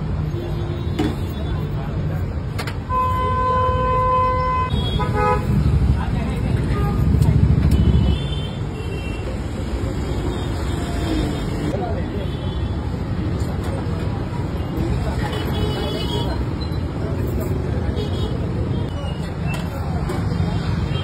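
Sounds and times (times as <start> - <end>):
street traffic rumble: 0.0 - 21.0.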